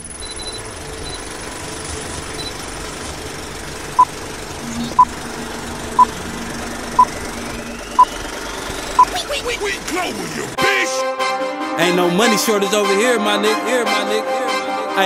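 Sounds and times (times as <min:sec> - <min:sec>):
low hum: 0:00.0 - 0:09.4
film projector rattle and hiss: 0:00.0 - 0:10.6
short high beeps: 0:00.2 - 0:01.2.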